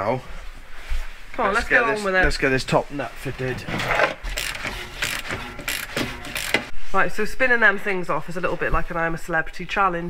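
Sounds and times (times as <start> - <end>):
hand ratchet clicking: 4.3 - 6.7.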